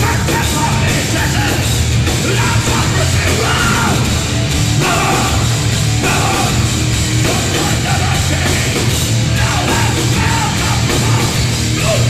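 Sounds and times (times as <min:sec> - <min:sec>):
distorted electric guitar: 0:00.0 - 0:12.0
drums: 0:00.0 - 0:12.0
electric bass: 0:00.0 - 0:12.0
shouted lead vocal: 0:00.0 - 0:12.0.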